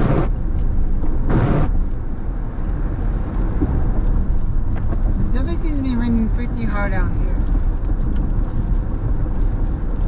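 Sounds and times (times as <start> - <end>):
road and engine rumble in car: 0.0 - 10.0.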